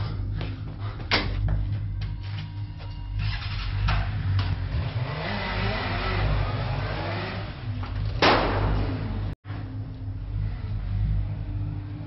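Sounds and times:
motorcycle engine revving: 0:03.2 - 0:09.4
sharp bang: 0:08.2 - 0:09.2.

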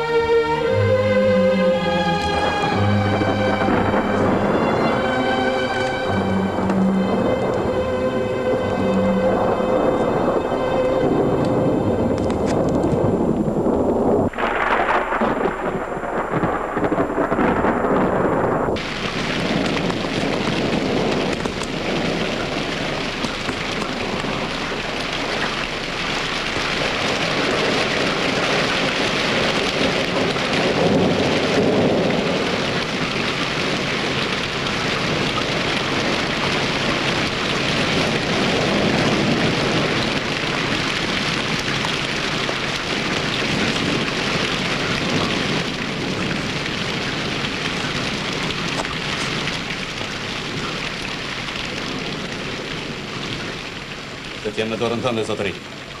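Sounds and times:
heavy rain falling: 0:00.0 - 0:56.0
low rumble of thunder: 0:01.1 - 0:56.0.

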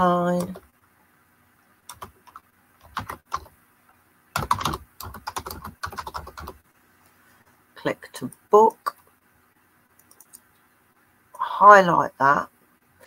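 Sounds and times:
keyboard typing: 0:01.9 - 0:03.5, 0:04.4 - 0:06.6, 0:10.0 - 0:10.5.

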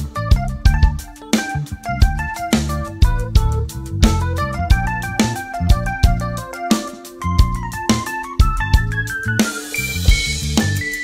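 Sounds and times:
jazz band playing: 0:00.0 - 0:11.0
sharp drum hits: 0:00.7 - 0:11.0.

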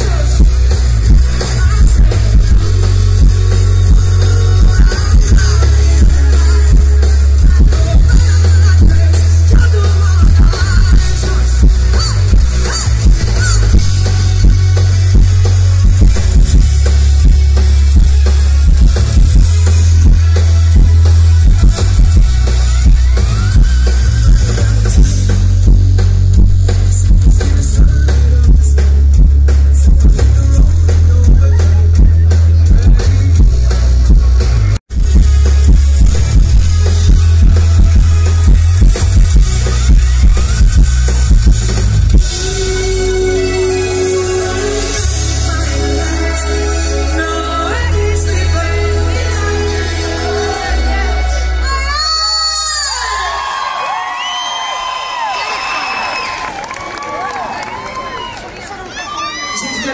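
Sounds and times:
driving drum beat: 0:00.0 - 0:56.4
live band music: 0:00.0 - 0:58.1.

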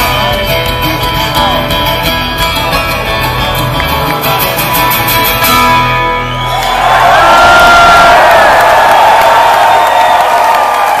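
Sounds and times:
audience cheering and whooping: 0:06.2 - 0:11.0.

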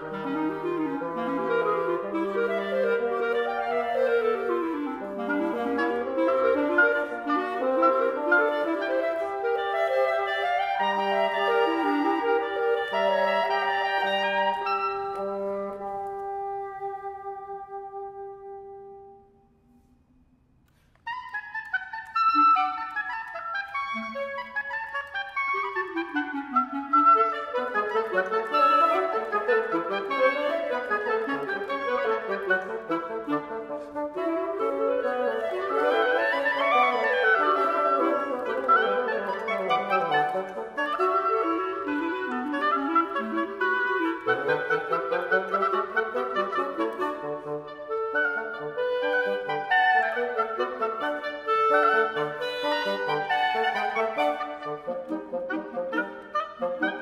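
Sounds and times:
woodwind trio playing: 0:00.0 - 0:57.0.

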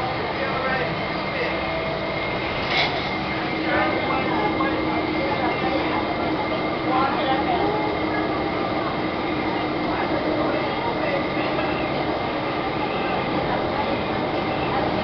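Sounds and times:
bus engine and road noise: 0:00.0 - 0:15.0
passengers talking: 0:00.0 - 0:15.0.

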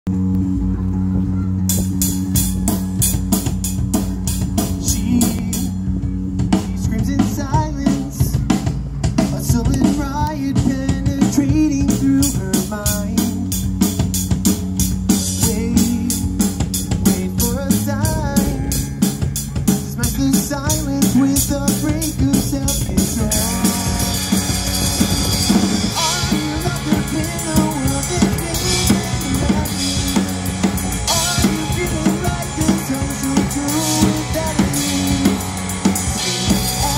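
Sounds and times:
distorted electric guitars: 0:00.1 - 0:36.9
drum kit beat: 0:00.2 - 0:36.9
lead vocal singing: 0:04.6 - 0:05.9, 0:06.5 - 0:08.6, 0:09.3 - 0:13.8, 0:15.1 - 0:36.9.

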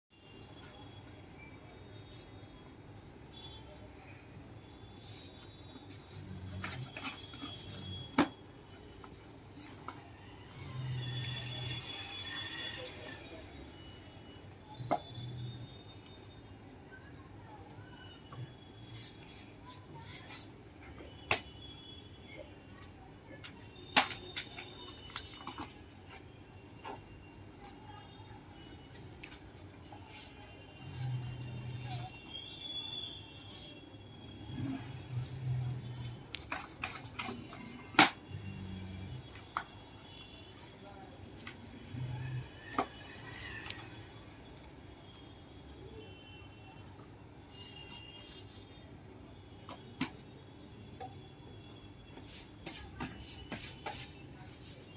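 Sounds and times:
paper rubbing and shuffling: 0:05.0 - 0:08.2, 0:18.7 - 0:20.5, 0:34.7 - 0:38.1, 0:52.1 - 0:54.9.

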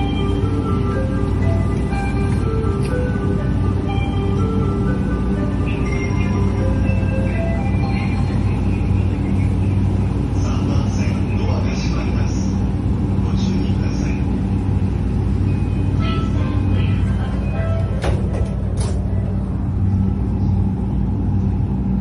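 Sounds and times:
faint passenger voices: 0:00.0 - 0:22.0
train motor hum: 0:00.0 - 0:22.0.

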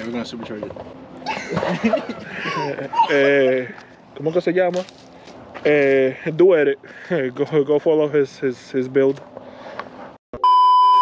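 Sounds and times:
test-tone beep: 0:10.4 - 0:11.0.

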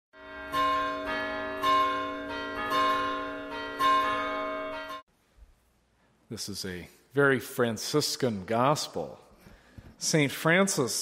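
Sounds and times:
church bells ringing: 0:00.2 - 0:05.1.

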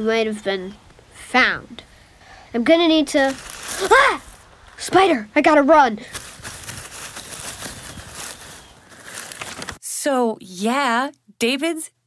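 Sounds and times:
running footsteps crunching: 0:03.2 - 0:05.1, 0:06.1 - 0:09.8.

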